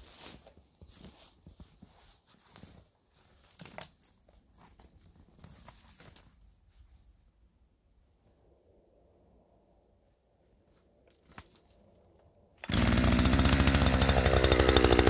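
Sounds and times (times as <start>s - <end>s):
footsteps crunching through snow: 0.0s - 6.9s.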